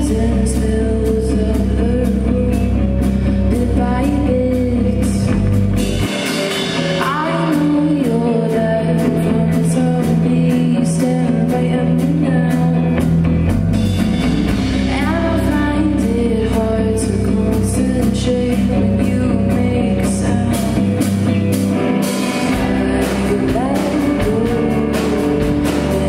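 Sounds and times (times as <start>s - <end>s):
woman singing: 0.0s - 5.8s, 7.0s - 13.2s, 14.8s - 21.5s, 22.2s - 26.0s
bass guitar: 0.0s - 26.0s
drum kit: 0.0s - 26.0s
electric guitars: 0.0s - 26.0s.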